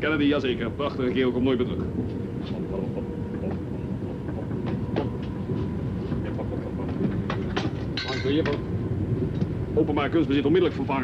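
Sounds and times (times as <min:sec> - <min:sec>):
train rumble: 0:00.0 - 0:11.0.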